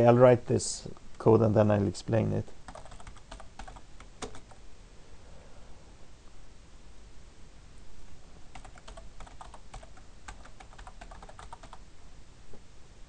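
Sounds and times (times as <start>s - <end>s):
computer keyboard typing: 2.6s - 4.6s, 8.5s - 11.8s.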